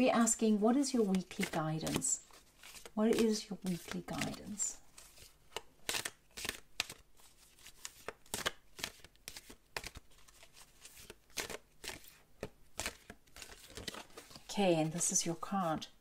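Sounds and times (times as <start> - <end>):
cards being shuffled: 0.7 - 15.9.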